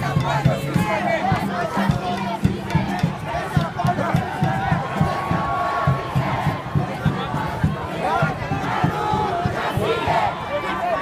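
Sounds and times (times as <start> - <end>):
crowd shouting: 0.0 - 11.0.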